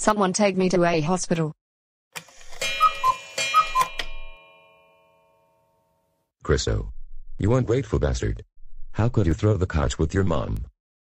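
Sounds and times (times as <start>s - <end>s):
bell-like chime: 2.6s - 6.2s.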